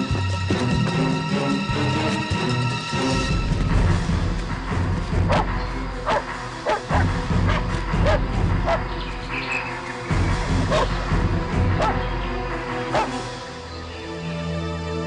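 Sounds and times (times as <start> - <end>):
background music: 0.0 - 15.0
dog barking: 5.3 - 5.5, 6.1 - 8.8, 10.7 - 10.9, 11.8 - 12.0, 12.9 - 13.2.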